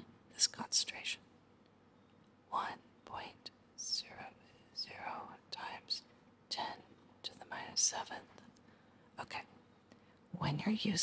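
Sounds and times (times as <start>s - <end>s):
person whispering: 0.4s - 1.2s, 2.5s - 8.4s, 9.2s - 9.5s.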